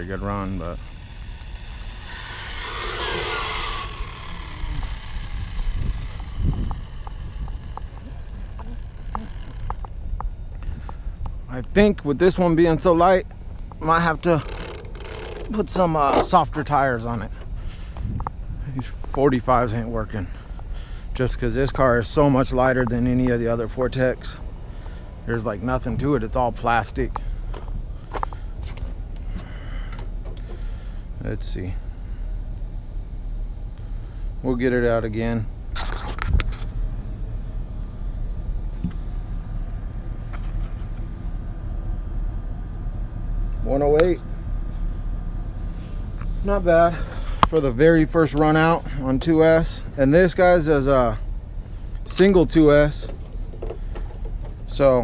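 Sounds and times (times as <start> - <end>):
electric motor whining down: 0.0 - 10.0
low rumble: 0.0 - 30.2.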